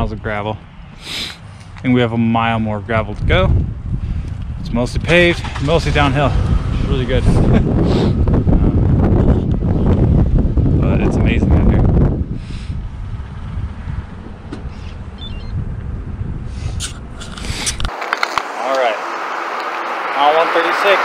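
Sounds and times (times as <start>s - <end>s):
wind buffeting microphone: 2.0s - 21.0s.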